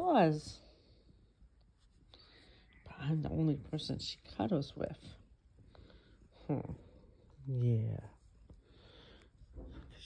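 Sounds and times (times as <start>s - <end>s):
woman speaking: 0.0s - 0.8s, 2.8s - 5.2s
faint soft hiss: 0.0s - 10.0s.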